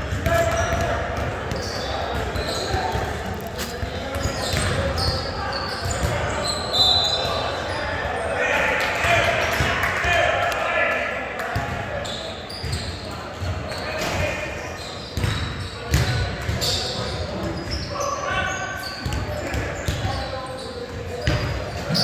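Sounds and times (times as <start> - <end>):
sneaker squeaks: 0.0 - 8.3, 11.6 - 22.0
background chatter of voices: 0.0 - 22.0.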